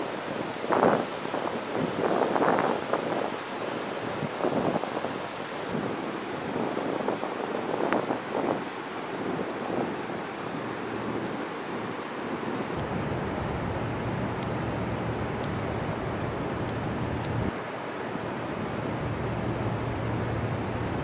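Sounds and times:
river rapids rushing: 0.0 - 21.0.

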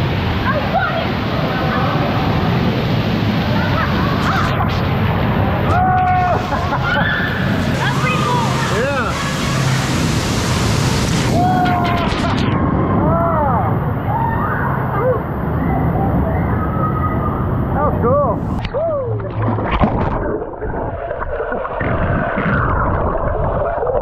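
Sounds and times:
waterfall rushing water: 0.0 - 12.4.

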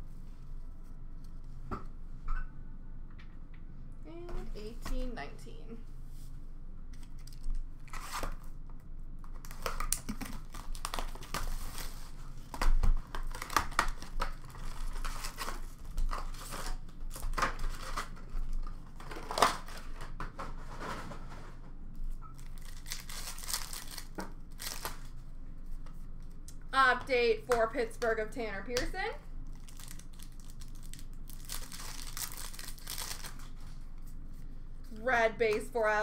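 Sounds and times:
card pack wrappers ripping: 9.3 - 20.1, 22.4 - 25.2, 29.5 - 33.6.

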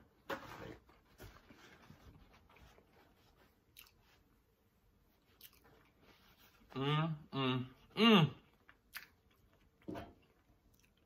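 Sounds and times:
close-miked chewing: 3.6 - 4.2, 5.2 - 6.0, 8.5 - 11.0.

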